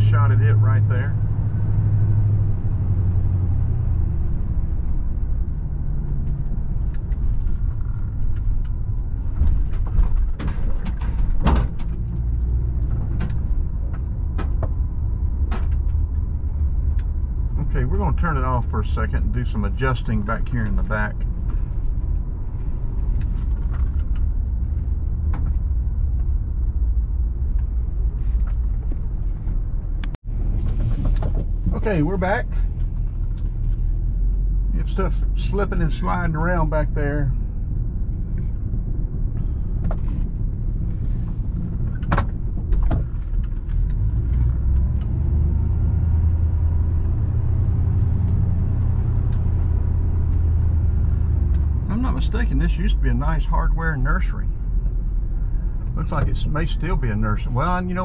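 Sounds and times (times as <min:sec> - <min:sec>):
car driving rumble in cabin: 0:00.0 - 0:58.0.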